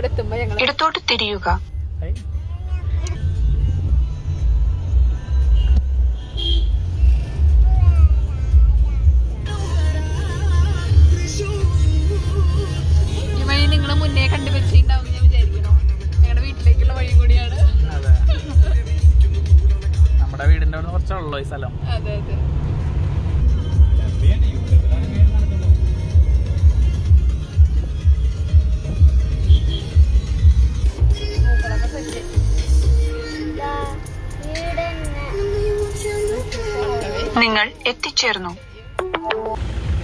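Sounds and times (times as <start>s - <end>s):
engine and road rumble: 0.0s - 40.0s
background music: 9.1s - 21.6s, 23.2s - 39.6s.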